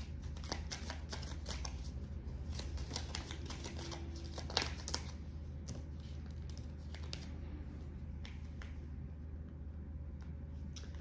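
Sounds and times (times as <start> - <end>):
cards being shuffled: 0.0 - 7.4
steady low hum: 0.0 - 11.0.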